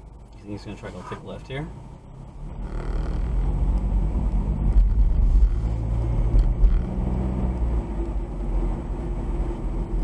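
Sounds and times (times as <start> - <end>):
car engine from inside cabin: 0.0 - 10.0
road rumble: 0.0 - 10.0.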